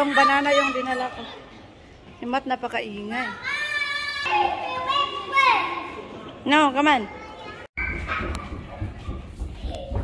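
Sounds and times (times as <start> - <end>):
faint children's voices: 7.0 - 10.0.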